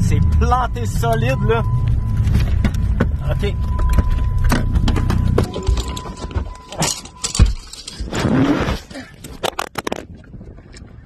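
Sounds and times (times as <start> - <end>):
low rumble: 0.0 - 8.2.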